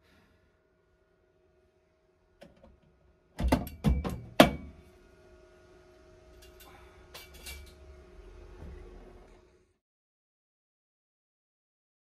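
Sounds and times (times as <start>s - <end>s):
faint steady hum: 0.0s - 9.8s
metal knocks and clanks: 3.4s - 4.7s.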